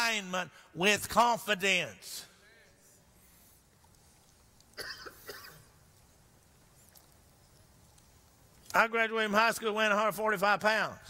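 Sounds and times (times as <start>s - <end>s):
man coughing: 4.8s - 5.7s.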